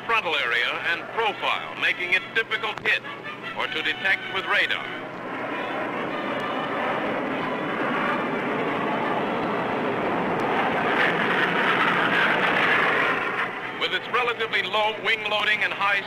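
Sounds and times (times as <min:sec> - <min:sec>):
jet aircraft flyby: 0:00.0 - 0:16.0.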